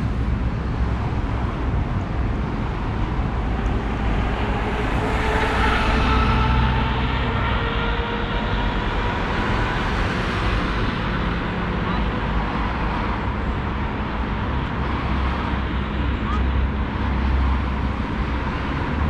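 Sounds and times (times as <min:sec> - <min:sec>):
cars passing at intersection: 0:00.0 - 0:19.0.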